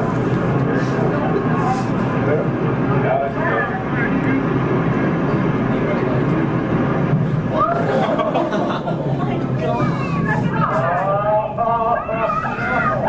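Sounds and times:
low rumbling film soundtrack noise: 0.0s - 13.0s
murmured voices: 0.0s - 13.0s.

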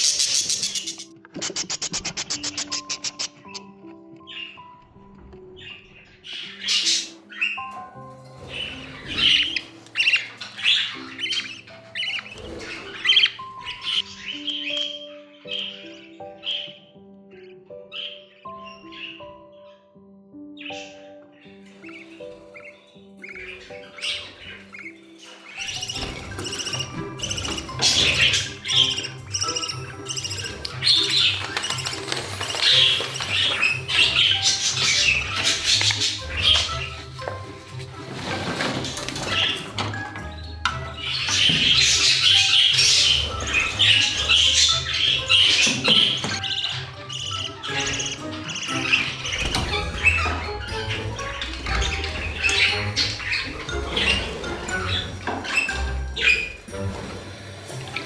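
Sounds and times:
budgerigars chirping and squawking: 0.0s - 58.0s
music of held notes: 0.0s - 58.0s.

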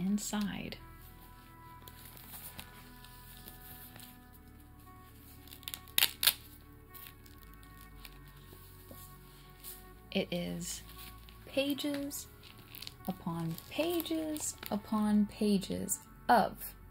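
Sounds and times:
soft background music: 0.0s - 16.9s
plastic binder pages crinkling: 0.4s - 9.8s, 10.8s - 15.0s
sharp plastic crackles: 5.4s - 8.1s, 11.0s - 14.8s.

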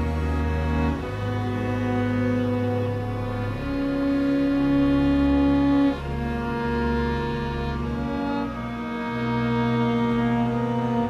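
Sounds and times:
bowed string ensemble chords: 0.0s - 11.0s.

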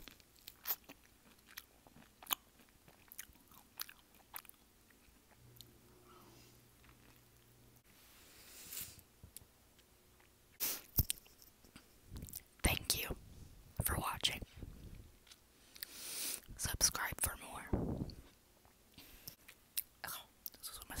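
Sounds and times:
person whispering close-up: 12.6s - 13.2s, 13.8s - 14.5s, 16.6s - 17.8s, 20.0s - 21.0s.

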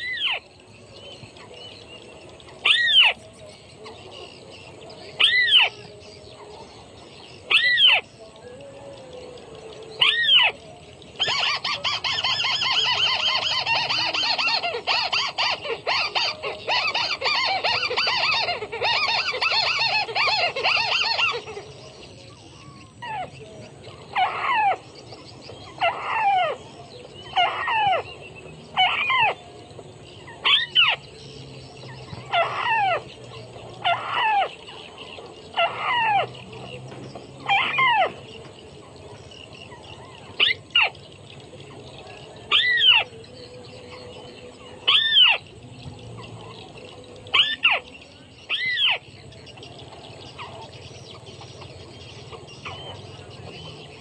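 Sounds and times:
bird fast chattering: 11.2s - 29.4s.

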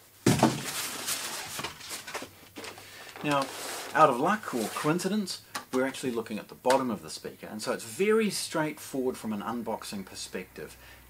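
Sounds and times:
plastic bag rustling: 0.0s - 5.0s.

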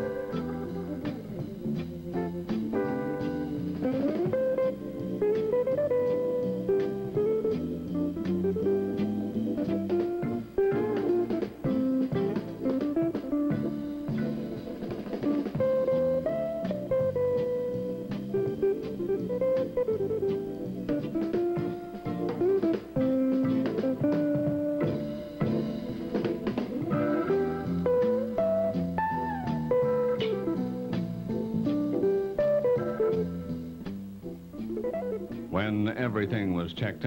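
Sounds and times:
bass line: 0.0s - 37.0s
plucked guitar melody: 0.0s - 37.0s.

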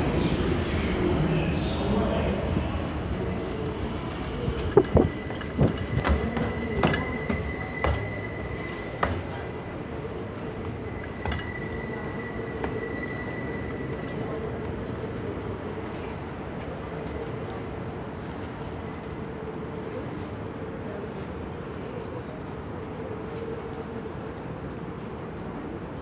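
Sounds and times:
train rumble: 0.0s - 26.0s
rail clacks and knocks: 4.6s - 8.3s.

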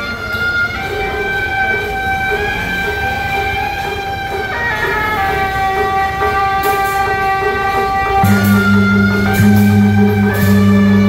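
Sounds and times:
procession band reedy melody: 0.0s - 11.0s
bright metallic clashes: 0.8s - 11.0s.

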